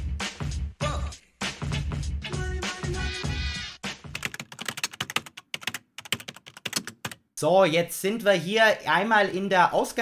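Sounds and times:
computer keyboard typing: 4.1 - 7.2.

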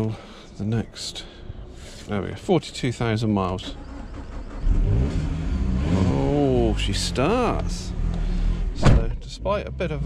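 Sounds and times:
car engine starting and revving: 3.5 - 10.0.

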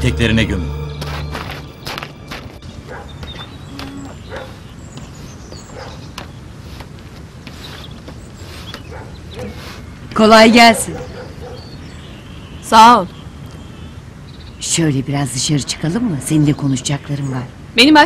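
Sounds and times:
dog barking: 2.9 - 3.5, 4.2 - 4.7, 5.7 - 6.0, 8.9 - 9.7, 10.6 - 11.7.

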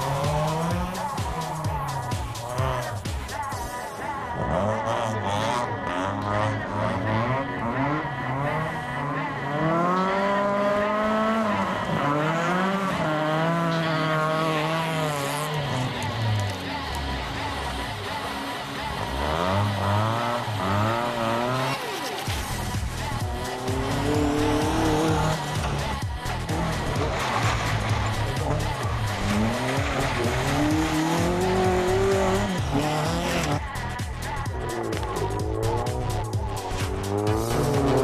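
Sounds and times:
music: 0.0 - 38.0
rally car engines revving: 0.0 - 38.0
tyres skidding on dirt: 0.0 - 38.0.

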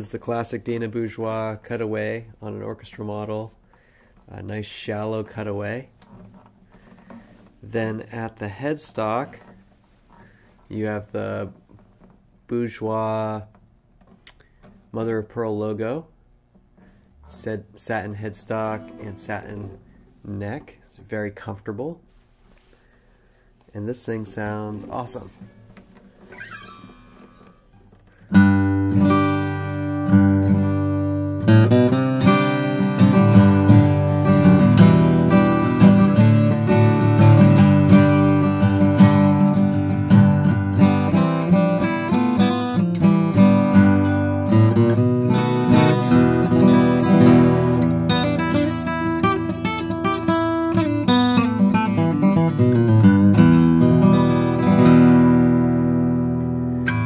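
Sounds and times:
acoustic guitar playing: 16.6 - 20.7, 23.9 - 57.0.

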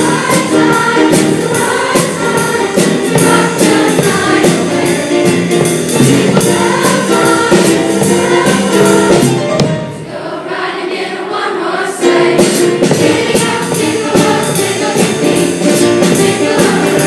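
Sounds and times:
drum kit: 0.0 - 10.0, 12.2 - 17.0
keyboard backing: 0.0 - 10.2, 12.0 - 17.0
chorus singing: 0.0 - 17.0.

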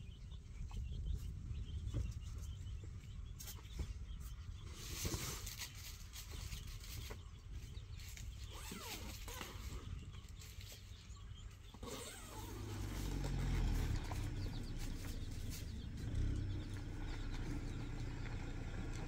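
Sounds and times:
car engine rumble: 0.0 - 19.0.

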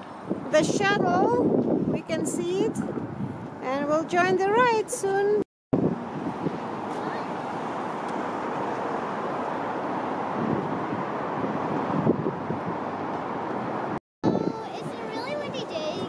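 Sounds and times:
distant traffic: 0.0 - 16.0
wind noise on microphone: 0.0 - 16.0.

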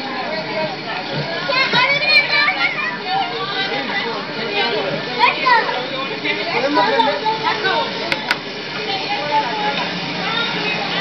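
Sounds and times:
children chattering and calling out: 0.0 - 11.0.

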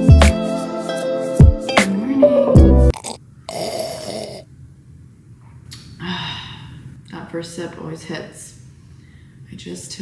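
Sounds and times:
person slurping from a mug: 2.9 - 4.4.

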